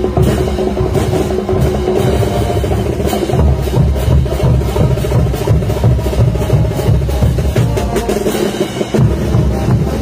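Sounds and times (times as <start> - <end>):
bass drum beat: 0.0 - 10.0
street band playing dance music: 0.0 - 10.0.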